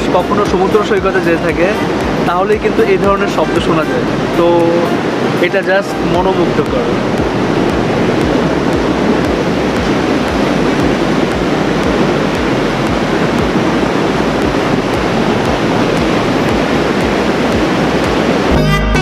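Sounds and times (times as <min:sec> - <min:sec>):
water rushing over weir: 0:00.0 - 0:19.0.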